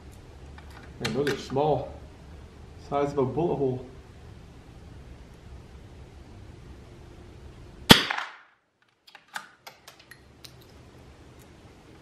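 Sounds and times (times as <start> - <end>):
rifle shot echoing: 7.9 - 8.6.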